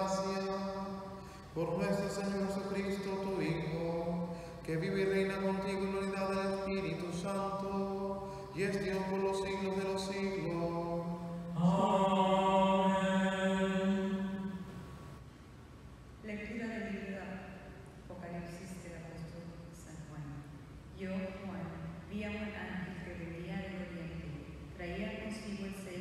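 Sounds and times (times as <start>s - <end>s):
man chanting a prayer: 0.0s - 14.4s.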